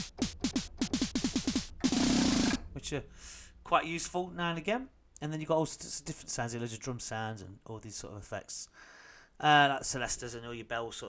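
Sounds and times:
noisy snare burst: 0:00.0 - 0:02.7
synth snare hits: 0:00.0 - 0:02.7.

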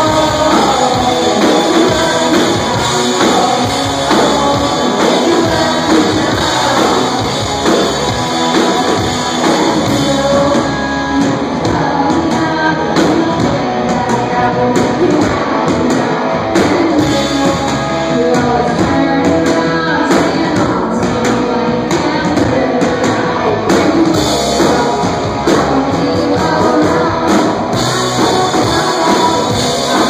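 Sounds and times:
drum kit: 0:00.0 - 0:30.0
electric guitars: 0:00.0 - 0:30.0.

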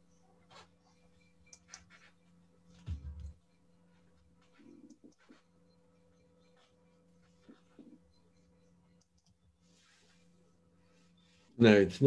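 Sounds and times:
faint computer mouse clicks: 0:09.0 - 0:09.4.

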